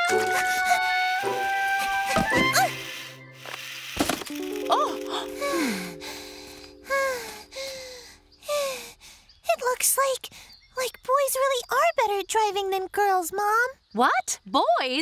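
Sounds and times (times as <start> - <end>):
cartoon underscore music: 0.0 - 3.4, 4.4 - 8.1.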